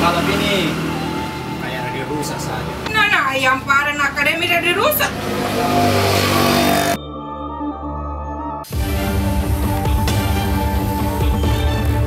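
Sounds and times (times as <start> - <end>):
motorcycle engine revving: 0.0 - 2.9, 4.1 - 7.0.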